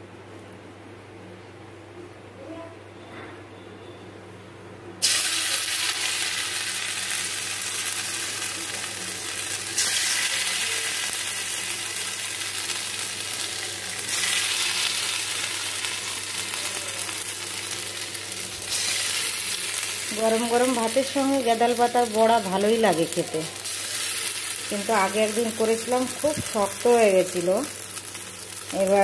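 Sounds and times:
fritters sizzling in hot oil: 0:05.0 - 0:29.0.

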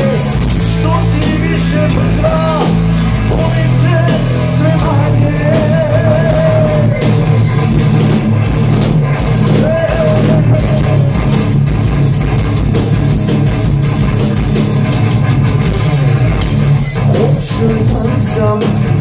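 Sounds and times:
rock band playing live: 0:00.0 - 0:19.0.

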